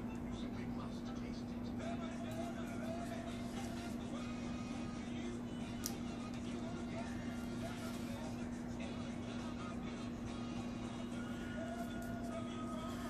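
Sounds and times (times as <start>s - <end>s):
background music: 0.0s - 13.0s
steady low hum: 0.0s - 13.0s.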